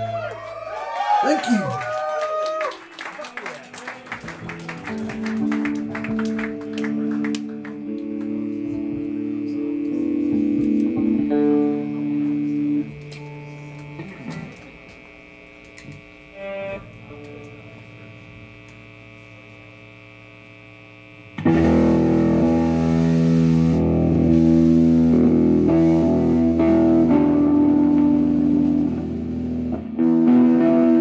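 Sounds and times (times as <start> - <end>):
live rock band with distorted guitars: 4.0 - 19.1, 21.4 - 31.0.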